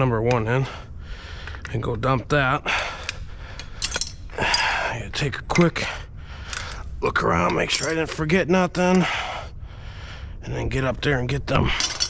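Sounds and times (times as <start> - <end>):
metal pipe scrap clinking: 3.0 - 4.7.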